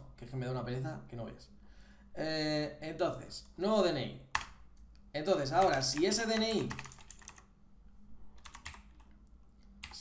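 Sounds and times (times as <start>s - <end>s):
faint low hum: 0.0s - 10.0s
keyboard keystrokes: 5.6s - 7.4s.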